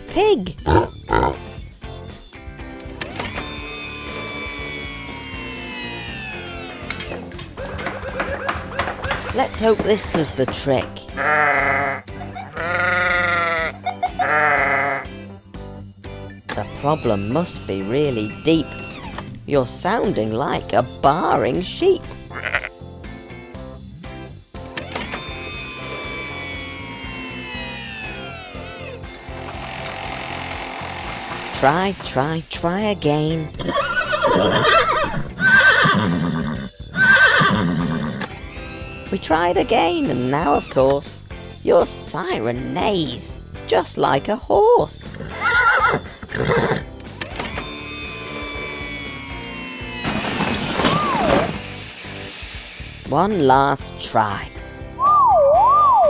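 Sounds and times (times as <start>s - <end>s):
background music: 0.0s - 56.0s
siren bleating like a sheep: 11.2s - 12.0s, 12.6s - 15.0s
horse whinny from loudspeaker: 33.6s - 38.3s, 45.3s - 46.9s.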